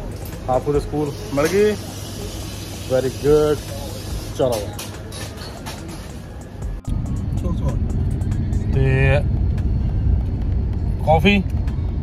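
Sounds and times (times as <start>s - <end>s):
car cabin road and engine rumble: 6.4s - 12.0s.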